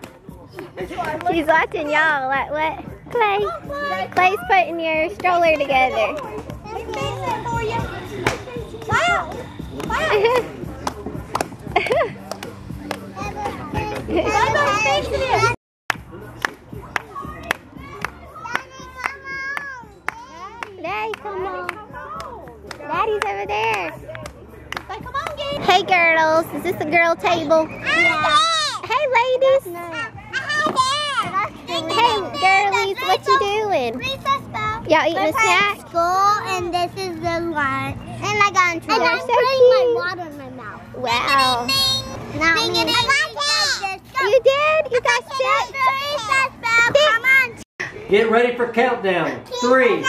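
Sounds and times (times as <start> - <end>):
adults and children talking: 0.0 - 50.0.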